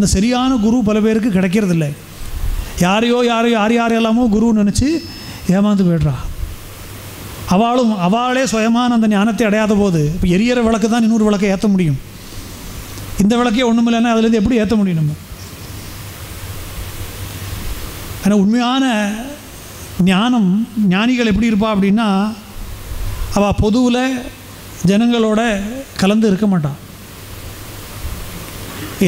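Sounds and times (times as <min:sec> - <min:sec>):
person speaking: 0:00.0 - 0:02.1, 0:02.8 - 0:06.4, 0:07.5 - 0:12.1, 0:13.2 - 0:15.4, 0:18.2 - 0:22.6, 0:23.3 - 0:26.9
steady hiss: 0:00.0 - 0:29.0.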